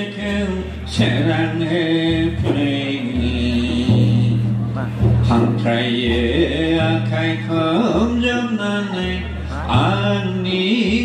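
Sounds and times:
man chanting through a microphone: 0.0 - 11.0.

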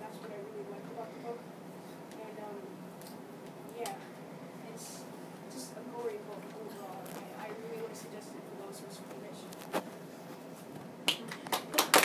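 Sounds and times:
audience applauding: 11.1 - 12.0.

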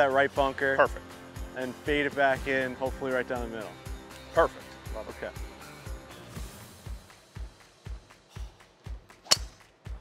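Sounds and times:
background music with beat: 0.0 - 10.0
golf ball struck off tee: 9.2 - 9.6.

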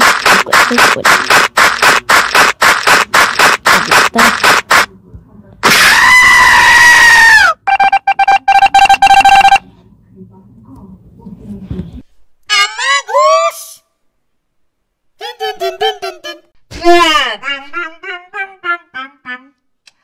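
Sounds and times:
stuttering steady tone: 0.0 - 4.9
loud drawn-out scream: 5.6 - 7.6
high squeaky vocal sounds: 17.4 - 19.6.

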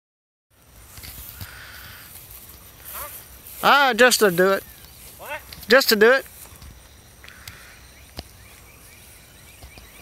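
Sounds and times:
footsteps in grass: 0.5 - 10.0.

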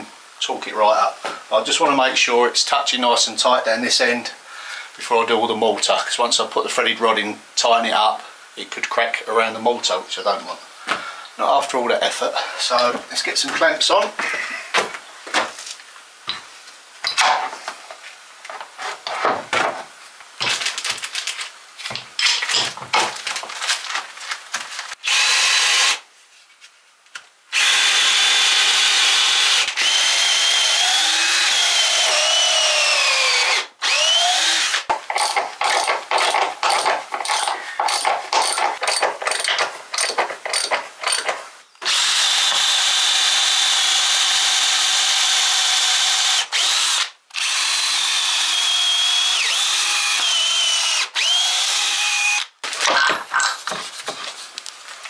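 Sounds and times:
power drill drilling into wood: 25.0 - 26.0, 27.5 - 38.6, 41.8 - 52.5.

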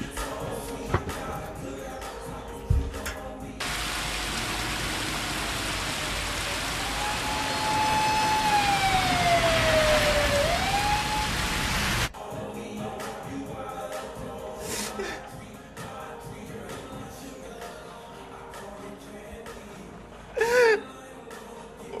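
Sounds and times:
heavy rain on a street: 3.6 - 12.1
police siren wailing: 6.3 - 12.1.

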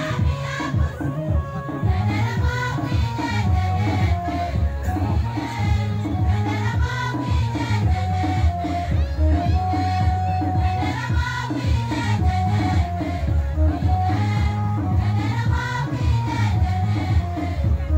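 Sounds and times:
choir singing gospel song: 0.0 - 17.9
steady beat with deep bass: 0.0 - 17.9.

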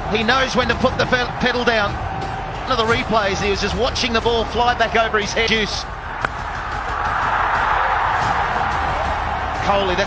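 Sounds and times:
stadium crowd cheering: 0.0 - 10.0.

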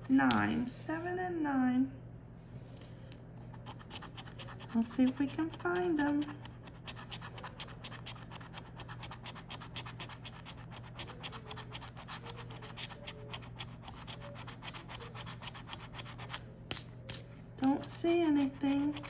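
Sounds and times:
coin scratching lottery ticket: 3.6 - 17.2.

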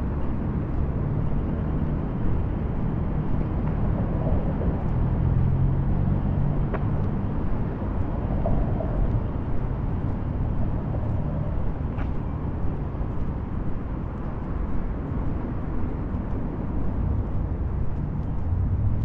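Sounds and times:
faint engine hum: 0.0 - 19.0
street traffic rumble: 0.0 - 19.0.

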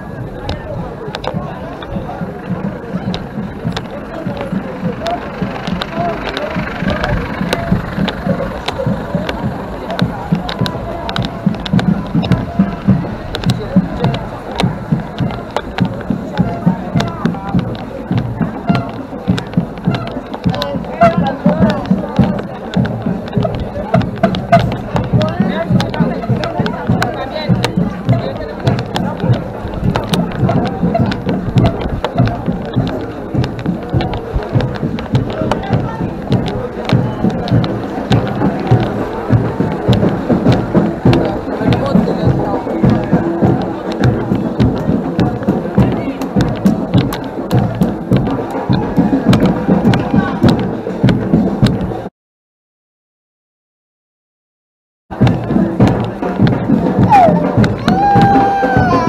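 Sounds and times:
carnival parade music: 0.0 - 52.1, 55.1 - 59.0
loud steady drum beat: 0.0 - 52.1, 55.1 - 59.0
voices: 0.0 - 52.1, 55.1 - 59.0.

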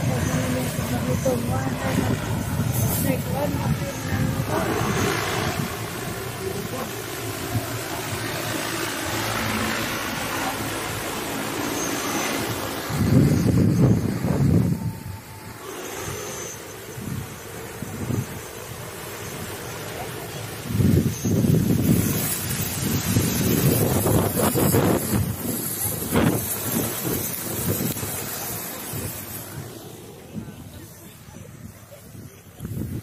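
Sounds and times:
drone rotors buzzing: 0.0 - 33.0
wind buffeting microphone: 0.0 - 33.0.

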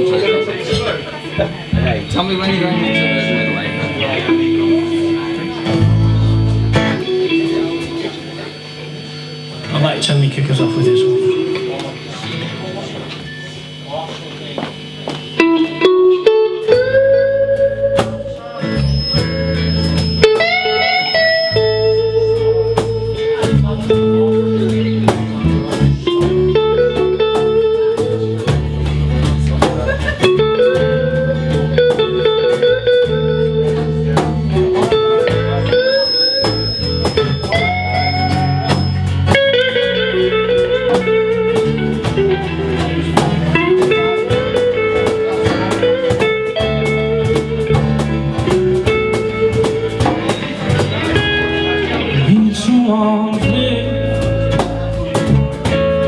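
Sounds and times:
strummed acoustic guitar: 0.0 - 13.8, 14.7 - 56.0
bass guitar: 0.0 - 56.0
electric lead guitar bending notes: 0.0 - 56.0.

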